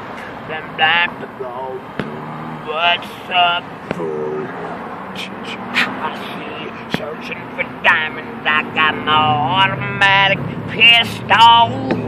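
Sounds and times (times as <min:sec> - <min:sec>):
man rapping: 0:00.1 - 0:12.0
man's short vocal sounds: 0:04.0 - 0:06.4.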